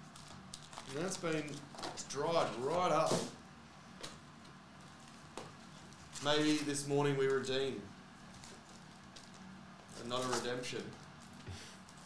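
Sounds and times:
faint room hiss: 0.0 - 12.0
foil packs ticking: 0.1 - 1.6.

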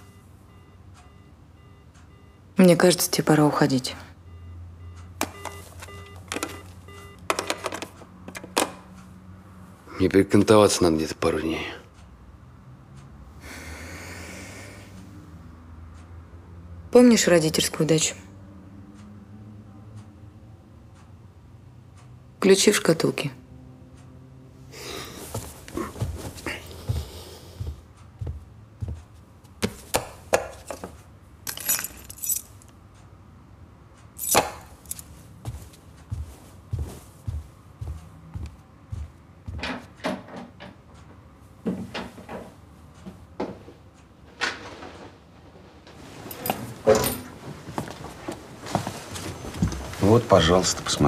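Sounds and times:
keys jingling: 31.4 - 32.7, 34.2 - 35.6, 46.3 - 47.3
handling clicks and rustles: 34.2 - 38.5.

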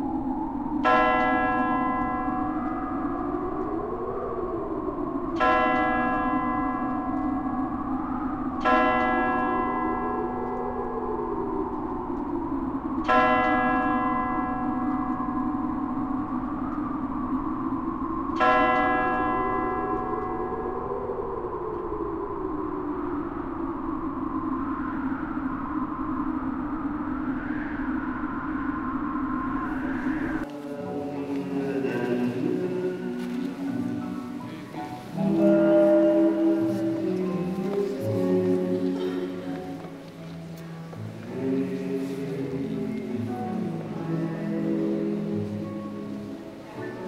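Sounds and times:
low sustained drone: 0.0 - 47.0
large bell tolling: 0.8 - 12.1, 13.0 - 17.0, 18.3 - 22.0, 29.6 - 47.0.

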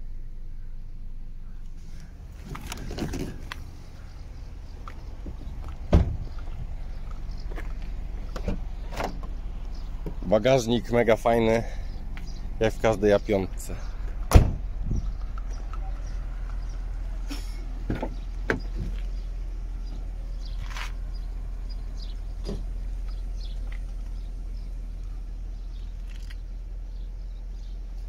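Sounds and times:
steady low hum: 0.0 - 28.0
car door clunks and click: 4.8 - 6.5, 7.4 - 9.4, 14.1 - 15.5, 17.8 - 19.1
car tailgate thud: 5.9 - 6.4, 14.3 - 15.0.

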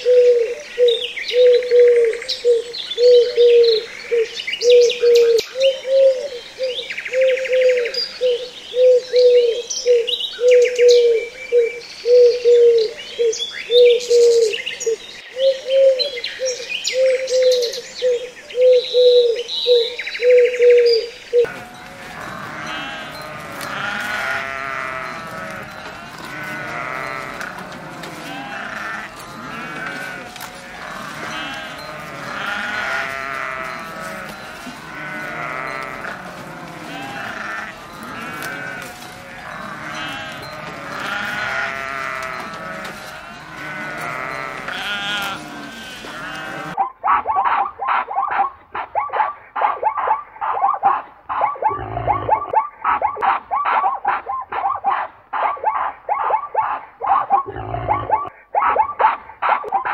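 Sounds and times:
birds chirping: 0.0 - 46.8
low cooing call: 0.0 - 46.8, 51.6 - 52.6
goats bleating: 21.4 - 46.8.

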